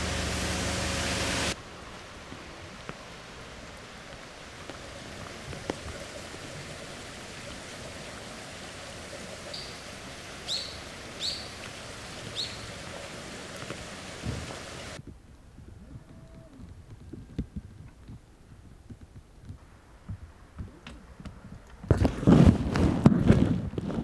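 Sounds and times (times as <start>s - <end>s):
outdoor hiss: 0.0s - 15.1s
bird chirping: 9.5s - 9.8s, 10.4s - 11.6s, 12.3s - 12.7s.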